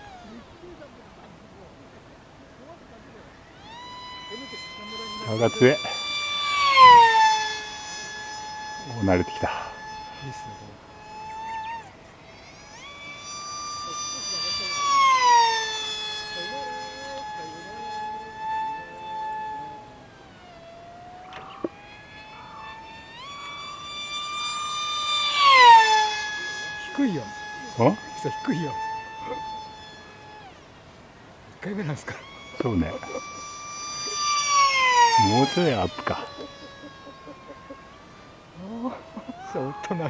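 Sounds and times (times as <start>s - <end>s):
rc plane motor whining past: 0.0s - 40.0s.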